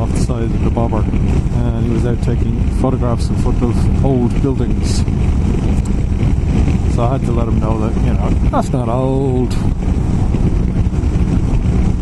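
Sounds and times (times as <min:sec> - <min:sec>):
motorcycle engine running: 0:00.0 - 0:12.0
road noise: 0:00.0 - 0:12.0
wind buffeting microphone: 0:00.0 - 0:12.0.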